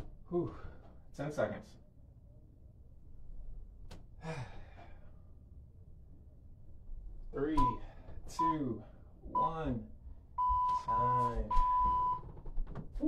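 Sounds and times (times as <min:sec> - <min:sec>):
man exhaling with effort: 0:04.2 - 0:05.0.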